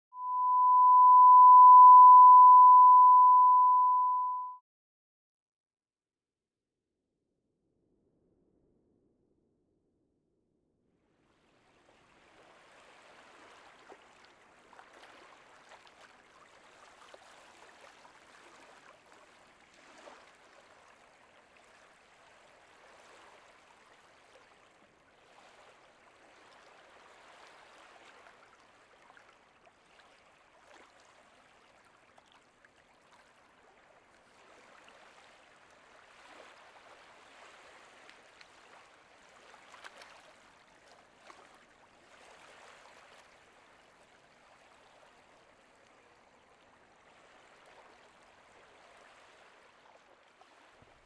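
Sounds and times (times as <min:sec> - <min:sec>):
steady pure test tone beep: 0:00.1 - 0:04.6.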